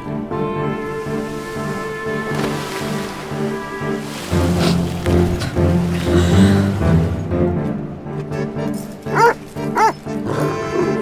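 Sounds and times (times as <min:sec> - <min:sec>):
orchestral film music: 0:00.0 - 0:11.0
dog barking: 0:09.1 - 0:10.0.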